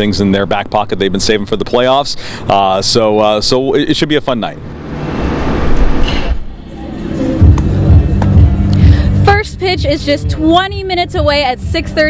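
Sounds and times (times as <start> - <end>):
music with heavy pulsing bass: 6.6 - 12.0.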